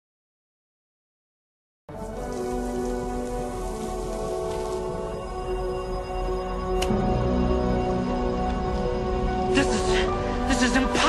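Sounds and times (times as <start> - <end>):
rain hissing: 1.9 - 6.0
soft sustained music notes: 1.9 - 11.0.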